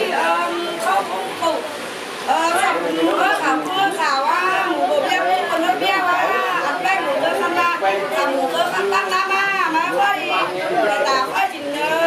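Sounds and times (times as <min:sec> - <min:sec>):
women talking over each other: 0:00.0 - 0:12.0.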